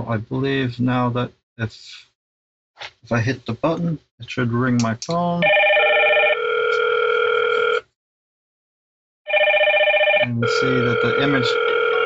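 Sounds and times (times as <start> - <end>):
intercom electronic ringing: 9.3 - 12.0.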